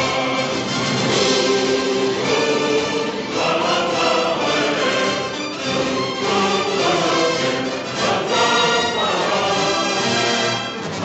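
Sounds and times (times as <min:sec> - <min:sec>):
choir singing held chords: 0:00.0 - 0:11.0
orchestral trailer music: 0:00.0 - 0:11.0.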